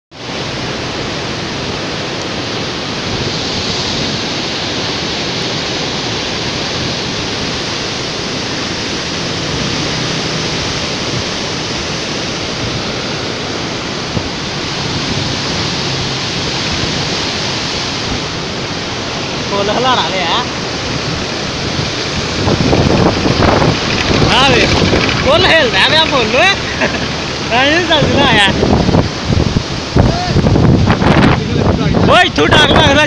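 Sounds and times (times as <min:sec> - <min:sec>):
floodwater rushing: 0:00.1 - 0:33.0.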